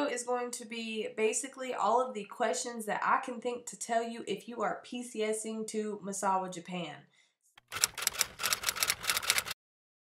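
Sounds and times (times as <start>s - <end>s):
typewriter key clicks: 7.6s - 9.6s.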